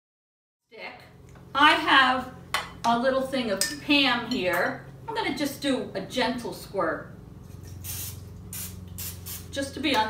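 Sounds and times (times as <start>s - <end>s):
cooking spray hissing: 7.7s - 9.6s.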